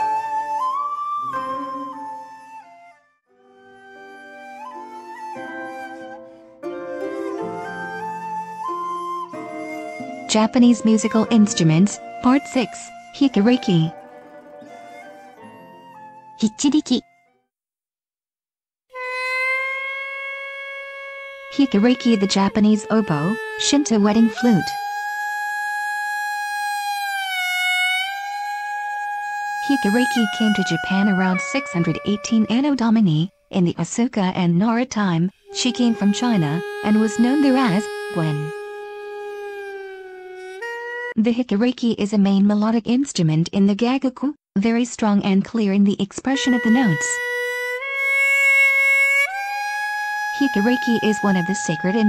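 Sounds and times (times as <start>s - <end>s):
double-reed pipe long note: 0.0s - 3.0s, 3.6s - 16.2s, 18.9s - 33.2s, 35.4s - 41.2s, 46.4s - 52.0s.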